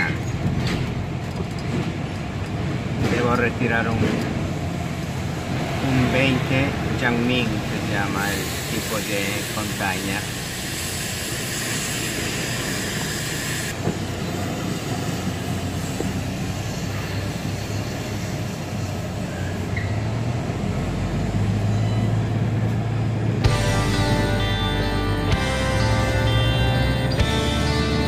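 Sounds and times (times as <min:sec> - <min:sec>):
road and wind noise: 0:00.0 - 0:28.0
truck engine hum: 0:00.0 - 0:28.0
background guitar music: 0:23.4 - 0:28.0.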